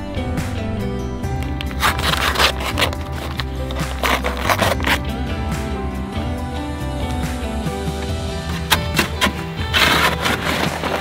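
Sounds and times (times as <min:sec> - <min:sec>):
background music: 0:00.0 - 0:11.0
paper bag being torn open: 0:01.4 - 0:05.2, 0:08.6 - 0:11.0.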